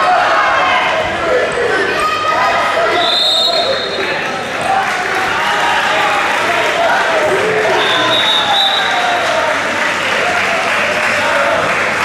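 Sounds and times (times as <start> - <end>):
coaches and spectators shouting: 0.0 - 12.0.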